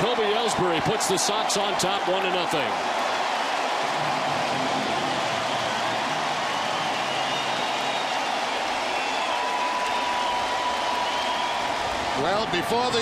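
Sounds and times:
crowd cheering and applauding: 0:00.0 - 0:13.0.

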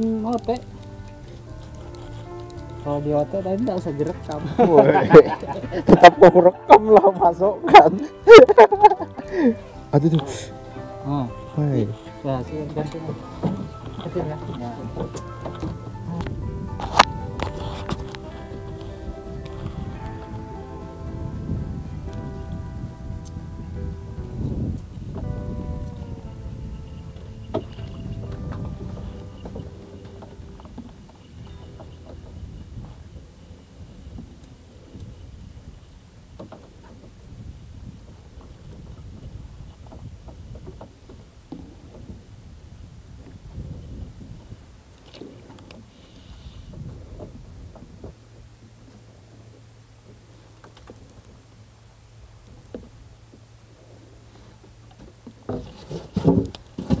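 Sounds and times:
background music sustained tones: 0:00.0 - 0:35.9
wind rumbling on microphone: 0:00.0 - 0:57.0
water lapping against boat hull: 0:08.9 - 0:20.3, 0:24.9 - 0:57.0.

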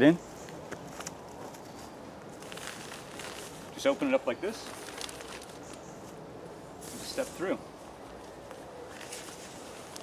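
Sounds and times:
soft tarp rustles: 0:00.9 - 0:06.2, 0:08.2 - 0:10.0.

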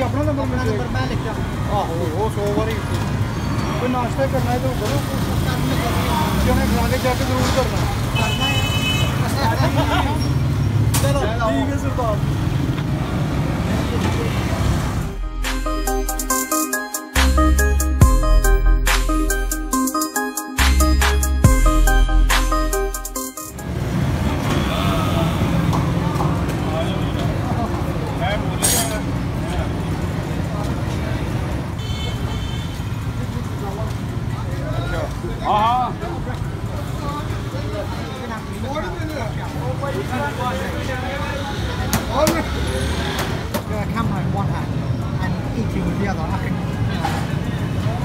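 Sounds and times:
motorcycle and traffic engines: 0:00.0 - 0:15.2, 0:23.5 - 0:48.0
voices of passers-by: 0:00.0 - 0:48.0
background music: 0:15.0 - 0:24.2.

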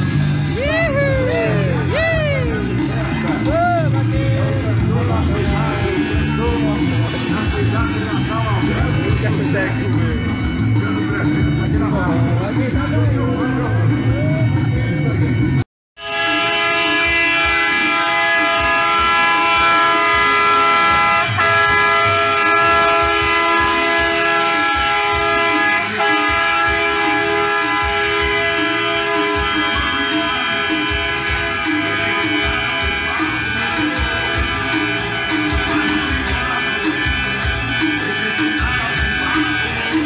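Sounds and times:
truck air horns chord: 0:00.0 - 0:40.0.

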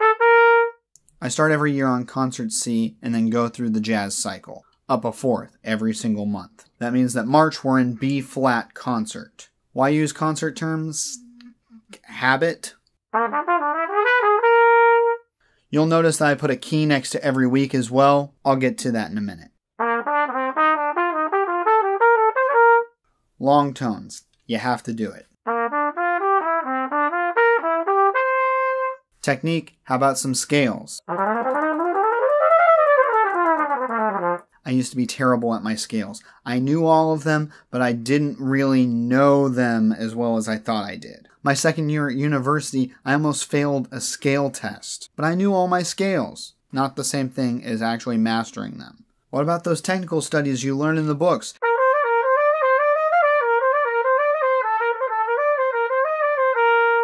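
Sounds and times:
trumpet playing short notes: 0:00.0 - 0:00.8, 0:13.2 - 0:15.3, 0:19.8 - 0:23.0, 0:25.5 - 0:29.0, 0:31.1 - 0:34.5, 0:51.6 - 0:57.0.

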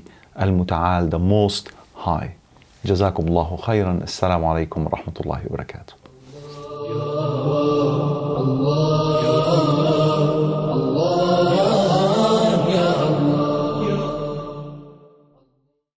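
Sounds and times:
drawn-out melodic vocal chant: 0:06.1 - 0:15.4.

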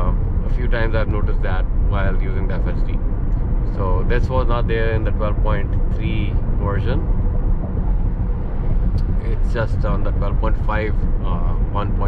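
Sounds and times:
tyre and road rumble inside car: 0:00.0 - 0:12.0.

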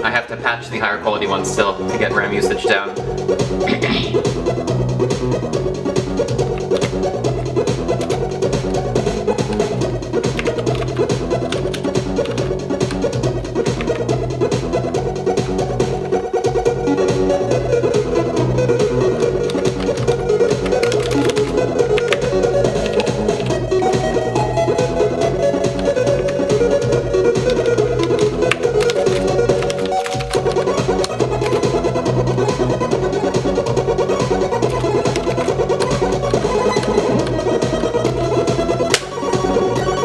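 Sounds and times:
tracker music: 0:00.1 - 0:40.0.

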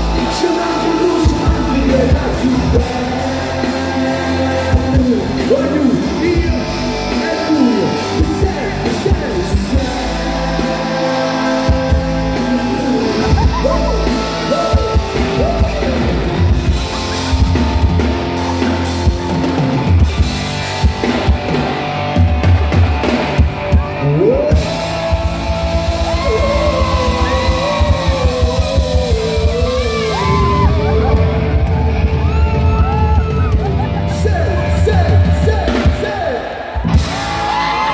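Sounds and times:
held sliding melody line: 0:00.0 - 0:19.7, 0:24.5 - 0:32.2
live band music: 0:00.0 - 0:37.9.

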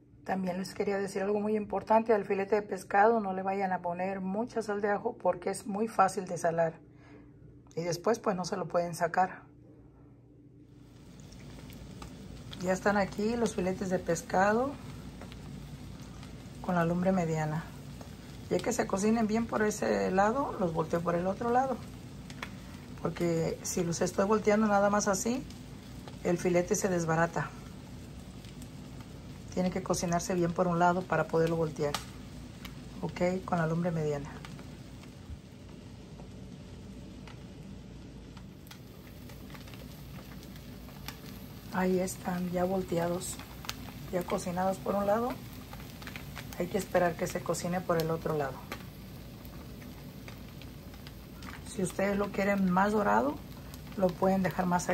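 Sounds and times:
fish sizzling in a frying pan: 0:10.8 - 0:54.9
fat popping and crackling: 0:10.9 - 0:54.9.

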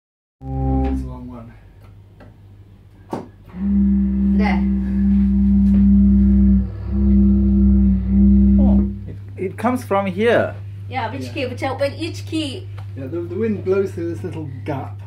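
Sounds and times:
low organ note held: 0:00.4 - 0:01.4, 0:03.5 - 0:09.9.

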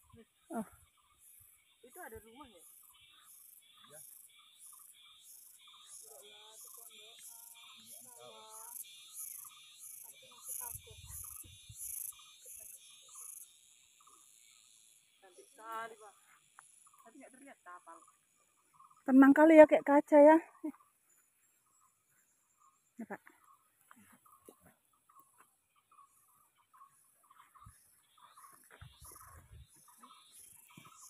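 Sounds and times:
high-pitched insect chirping: 0:00.0 - 0:31.0.

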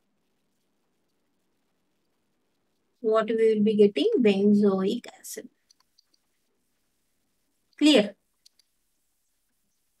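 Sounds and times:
stylus tapping tablet screen: 0:05.6 - 0:06.9.

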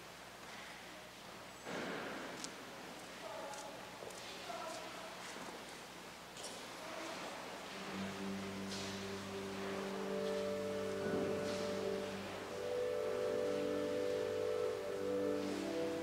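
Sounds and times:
faint shuffling: 0:00.4 - 0:16.0
church organ chords: 0:07.8 - 0:16.0.

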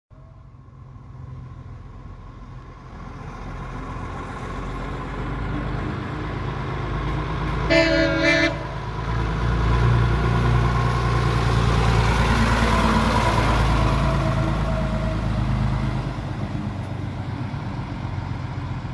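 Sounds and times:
diesel engine driving past: 0:00.2 - 0:18.9
lorry horn toot: 0:07.7 - 0:08.8.

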